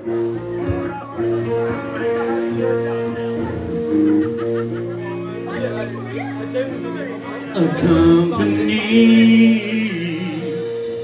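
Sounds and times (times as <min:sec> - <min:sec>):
bass line: 0:00.0 - 0:11.0
electric guitar sustained notes: 0:00.0 - 0:11.0.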